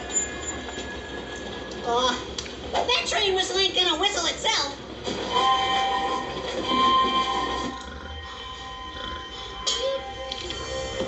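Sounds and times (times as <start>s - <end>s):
steam locomotive whistle: 5.3s - 7.8s.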